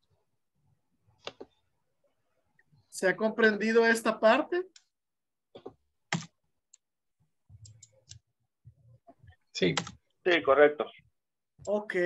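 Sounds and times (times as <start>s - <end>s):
computer clicks: 5.6s - 6.9s, 7.6s - 8.3s.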